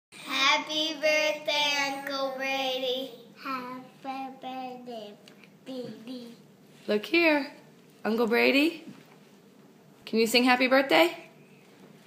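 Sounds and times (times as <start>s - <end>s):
child singing: 0.2s - 6.4s.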